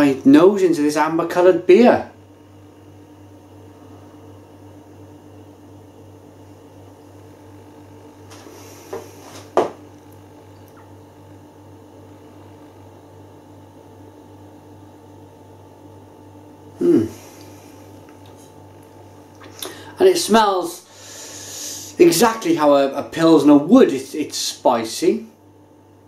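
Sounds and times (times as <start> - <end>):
low electrical hum: 0.0 - 26.0
person sniffing: 8.4 - 9.5, 16.8 - 17.8, 19.6 - 19.9, 20.9 - 22.0.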